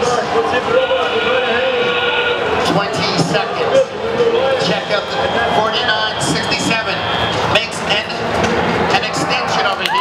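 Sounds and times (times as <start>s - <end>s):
crowd noise: 0.0s - 10.0s
voices: 0.0s - 10.0s.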